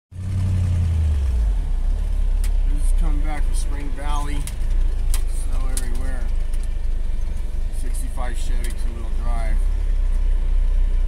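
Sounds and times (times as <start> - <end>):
truck engine droning: 0.1 - 11.0.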